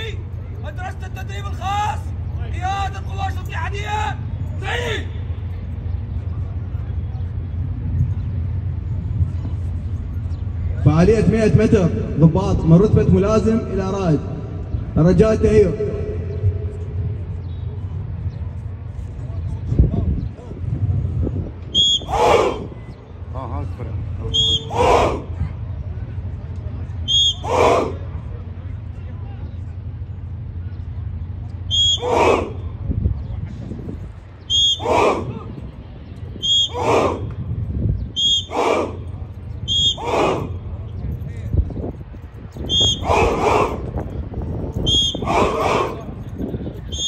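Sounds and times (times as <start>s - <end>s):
faint indistinct voices: 0.0s - 10.9s, 16.1s - 47.0s
low rumble: 0.0s - 34.5s
drill whistle blasts: 21.7s - 22.6s, 24.3s - 24.9s, 27.1s - 27.7s, 31.7s - 32.5s, 34.5s - 35.1s, 36.4s - 37.0s, 38.2s - 38.8s, 39.7s - 40.4s, 42.7s - 43.4s, 44.9s - 45.5s
group shouting in unison: 22.0s - 22.8s, 24.4s - 25.4s, 27.3s - 28.0s, 31.8s - 32.6s, 34.6s - 35.5s, 36.6s - 37.3s, 38.4s - 39.1s, 39.8s - 40.6s, 42.8s - 44.0s, 45.1s - 46.2s.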